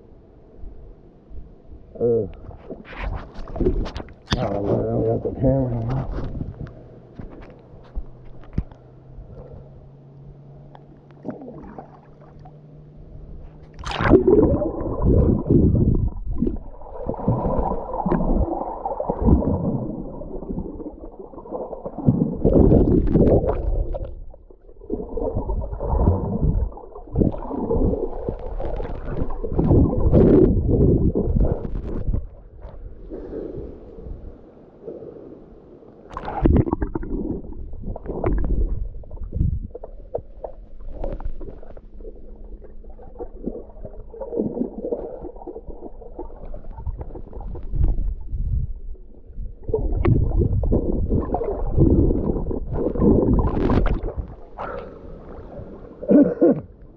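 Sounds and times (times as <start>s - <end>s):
water splashes: 2.3s - 9.7s, 10.6s - 34.2s, 36.0s - 56.2s
muffled underwater gurgling: 11.1s - 12.5s, 13.4s - 34.2s, 36.1s - 56.9s.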